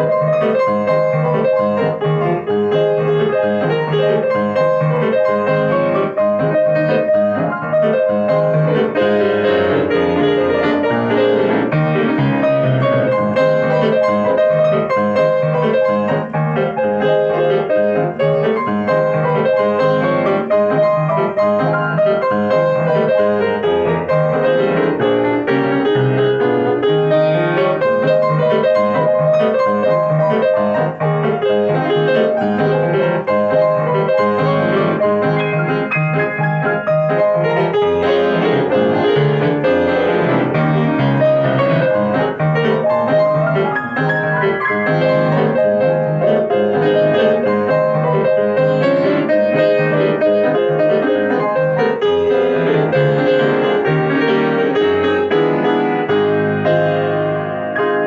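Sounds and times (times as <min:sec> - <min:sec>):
grand piano playing: 0:00.0 - 0:58.0.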